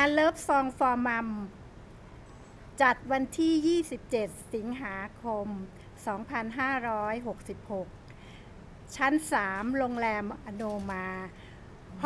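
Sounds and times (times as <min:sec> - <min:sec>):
woman speaking: 0:00.0 - 0:01.6, 0:02.8 - 0:08.0, 0:08.9 - 0:12.0.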